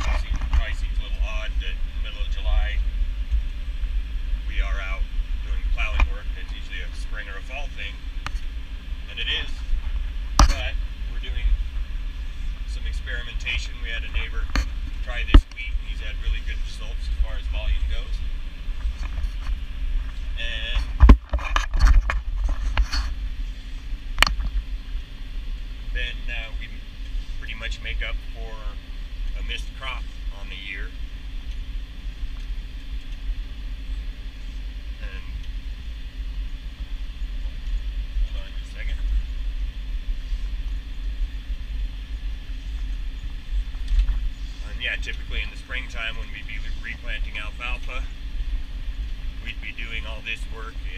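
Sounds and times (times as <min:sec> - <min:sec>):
tractor engine rumble: 0:00.0 - 0:50.9.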